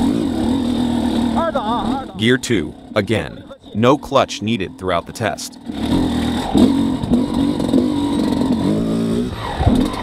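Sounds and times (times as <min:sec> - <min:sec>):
two-stroke motorcycle engine: 0:00.0 - 0:10.0.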